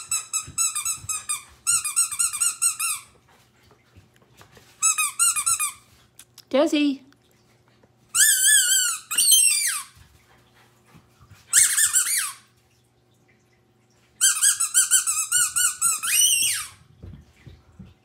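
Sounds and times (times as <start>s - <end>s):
rubber dog toy squeaking: 0.0s - 3.0s, 4.8s - 5.8s, 8.2s - 9.8s, 14.2s - 16.8s.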